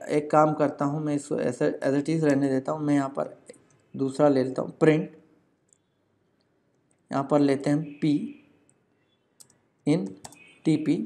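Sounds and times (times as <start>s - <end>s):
man speaking: 0.0s - 5.2s, 7.1s - 8.4s, 9.9s - 11.0s
keyboard keys typing: 9.4s - 10.8s.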